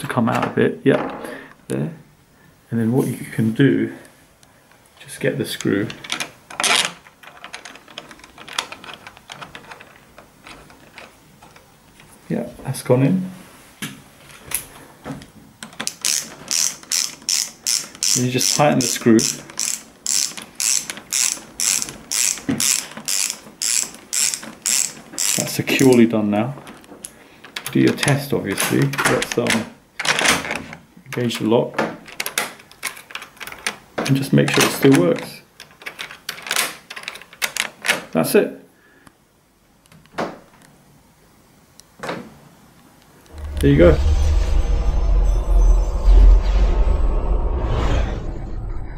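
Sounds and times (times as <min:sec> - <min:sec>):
key turning in door lock: 0:05.6 - 0:11.2, 0:27.5 - 0:30.8, 0:32.0 - 0:35.0, 0:35.6 - 0:38.0
screwdriver ratchet clicks: 0:15.8 - 0:26.0.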